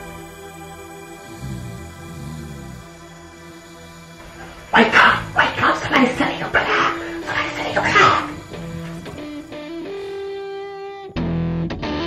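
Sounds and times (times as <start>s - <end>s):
background music with held tone: 0.0s - 12.0s
dog barking: 4.3s - 9.6s.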